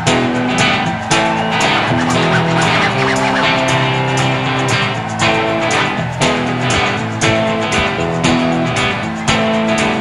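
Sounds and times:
high gliding guitar notes: 1.7s - 5.6s.

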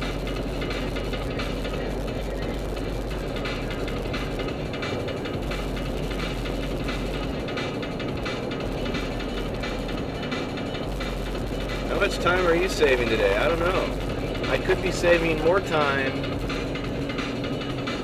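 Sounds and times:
road and engine noise in car: 0.0s - 18.0s.

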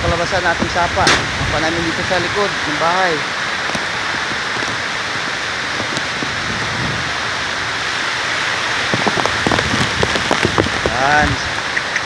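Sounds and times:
heavy rain pouring: 0.0s - 12.0s
strong wind: 0.0s - 12.0s.

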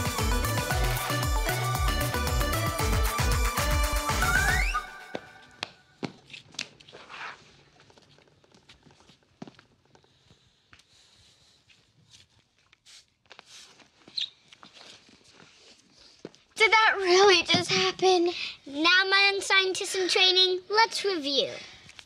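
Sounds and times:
dance music: 0.0s - 5.5s
footsteps on hard floor: 5.0s - 10.9s.

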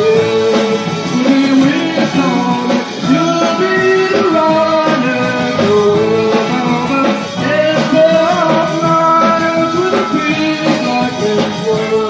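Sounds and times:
electric guitar: 0.0s - 12.0s
person singing: 0.0s - 12.0s
rock band playing: 0.0s - 12.0s.

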